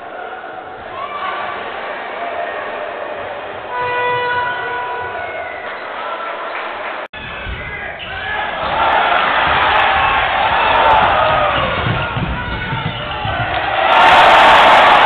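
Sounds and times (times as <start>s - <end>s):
crowd noise: 0.0s - 15.0s
crowd shouting and cheering: 0.0s - 15.0s.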